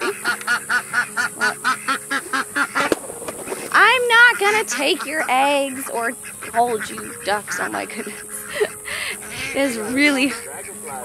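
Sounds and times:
ducks quacking: 0.0s - 11.0s.

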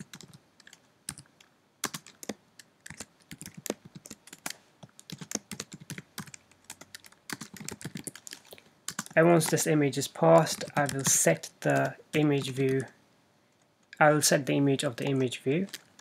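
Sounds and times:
computer keyboard typing: 0.0s - 12.9s, 14.9s - 16.0s.

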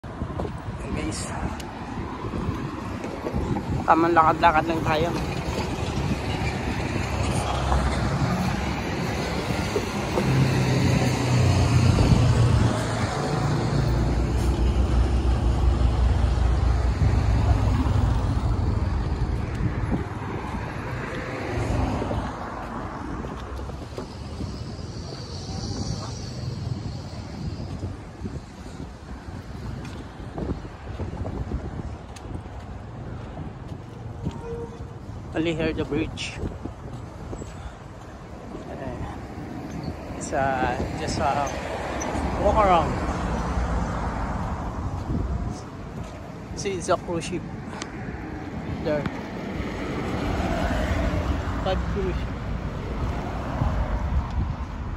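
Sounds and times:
traffic driving past: 0.0s - 54.9s.

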